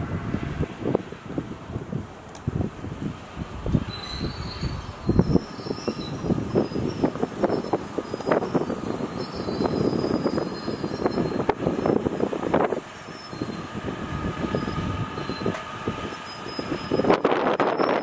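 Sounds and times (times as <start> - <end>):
high wheel squeal: 3.8 - 18.0
train wheels clanking over joints: 14.4 - 17.2.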